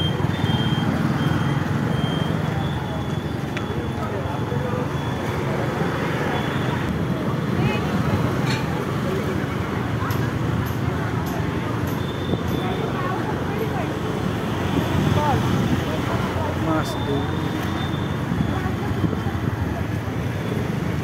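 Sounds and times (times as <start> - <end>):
high beeps: 0.0 - 5.4
motorbike engine hum: 0.0 - 21.0
passing vehicles: 0.0 - 21.0
voices of people: 0.0 - 21.0.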